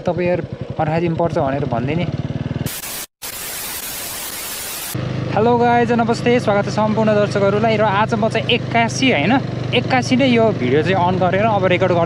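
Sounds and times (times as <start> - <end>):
white-noise static hiss: 2.7 - 5.0.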